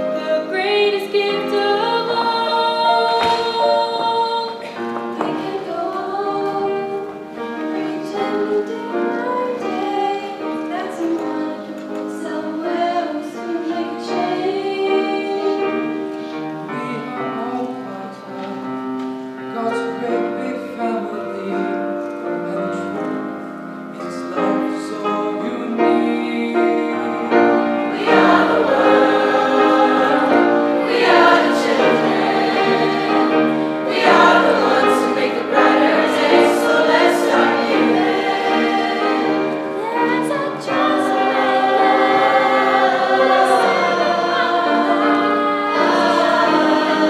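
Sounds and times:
choir singing sustained notes: 24.0s - 47.0s.

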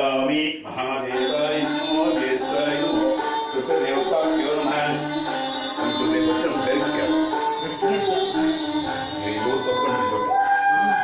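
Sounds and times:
man chanting: 0.0s - 10.4s
faint musical backing: 0.0s - 11.0s.

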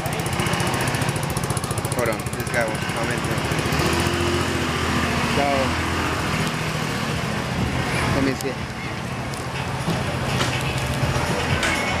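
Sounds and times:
small engine humming: 0.0s - 8.2s
street noise: 0.0s - 12.0s.

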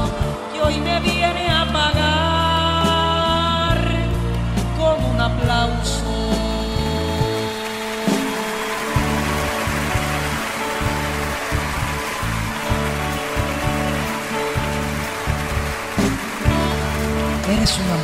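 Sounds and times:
live band playing ballad: 0.0s - 18.0s.

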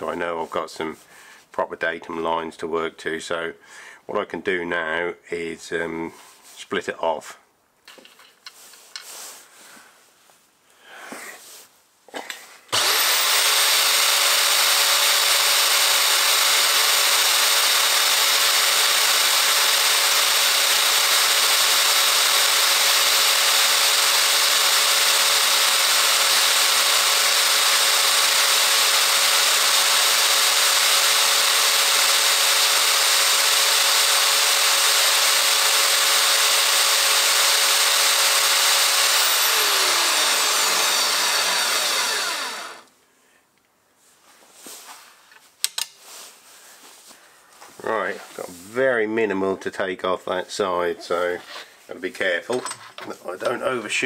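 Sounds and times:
bandsaw cutting metal: 12.7s - 42.9s
bandsaw winding down whine: 12.7s - 42.9s.

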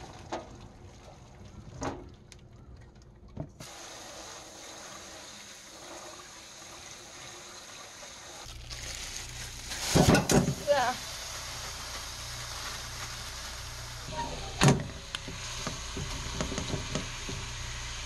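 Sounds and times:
tap water running into colander: 3.6s - 18.0s.

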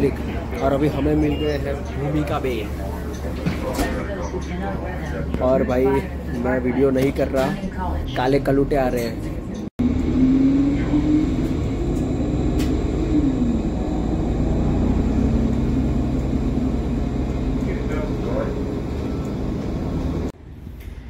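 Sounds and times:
bus engine rumble: 0.0s - 21.0s
humming tone: 9.8s - 20.3s.

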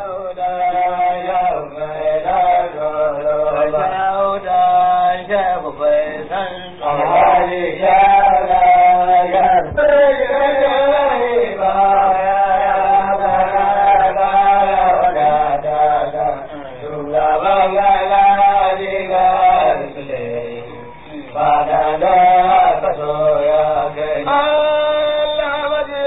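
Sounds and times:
man chanting: 0.0s - 26.0s.

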